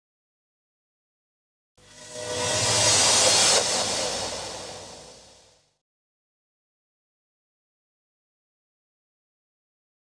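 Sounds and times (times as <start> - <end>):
hissing whoosh: 1.8 - 5.6.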